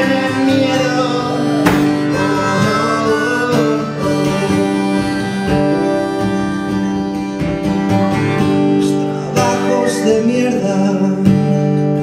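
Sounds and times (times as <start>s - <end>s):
acoustic guitar strumming: 0.0s - 12.0s
harmonica long notes: 0.0s - 12.0s.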